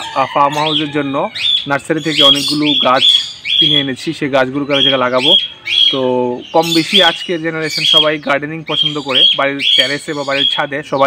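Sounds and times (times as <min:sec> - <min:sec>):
birds calling: 0:00.0 - 0:11.0
man talking: 0:00.0 - 0:11.0.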